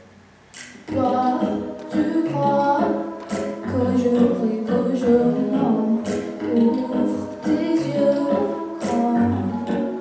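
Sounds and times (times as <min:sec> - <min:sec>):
girl singing into microphone: 0:00.8 - 0:10.0.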